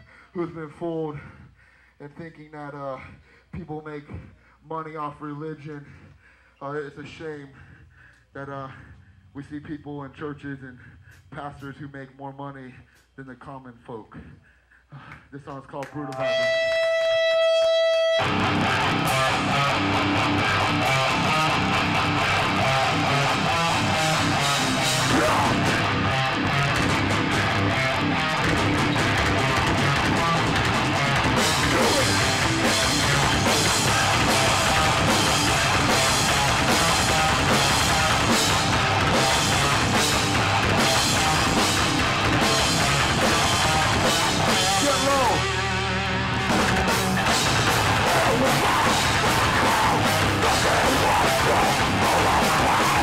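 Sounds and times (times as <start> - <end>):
guitar note bending and ringing: 16.0 - 38.1
punk band playing live: 16.1 - 53.0.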